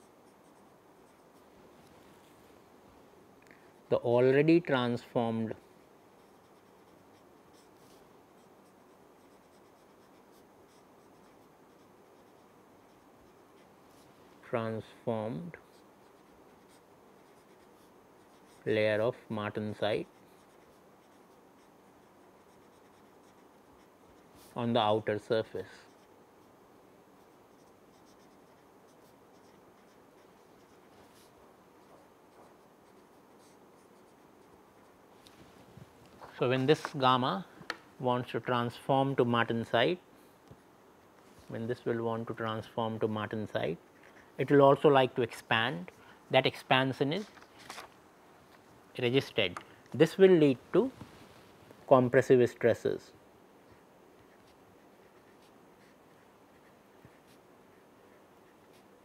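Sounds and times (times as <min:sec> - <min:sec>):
marker pen scratching on paper: 0:00.0 - 0:01.5, 0:06.2 - 0:14.1, 0:15.6 - 0:19.0, 0:20.0 - 0:24.6, 0:25.5 - 0:26.6, 0:27.2 - 0:35.0, 0:53.6 - 0:59.0
low room hiss: 0:00.0 - 0:59.0.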